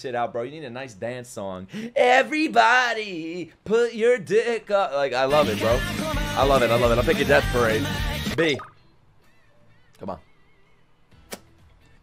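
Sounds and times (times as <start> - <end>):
sharp click: 11.3 - 11.5.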